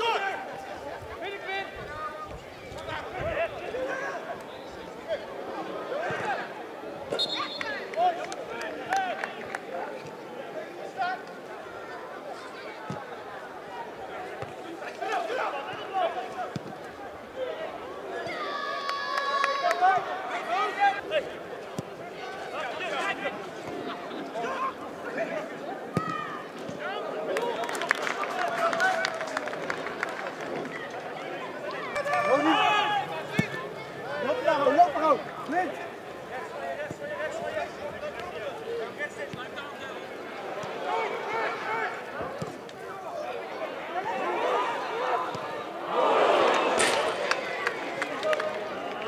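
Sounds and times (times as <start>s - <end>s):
players and spectators shouting: 0.0s - 49.0s.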